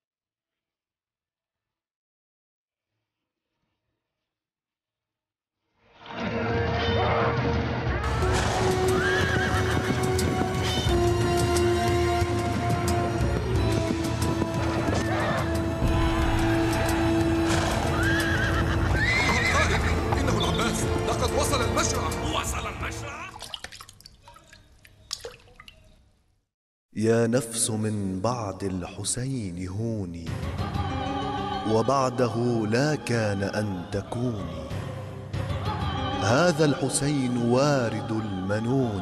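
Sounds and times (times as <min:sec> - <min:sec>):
dramatic film music: 0:06.1 - 0:23.3
horse whinnying: 0:08.4 - 0:11.0, 0:16.2 - 0:20.2
hoofbeats: 0:08.4 - 0:20.8
water dripping: 0:23.2 - 0:26.3.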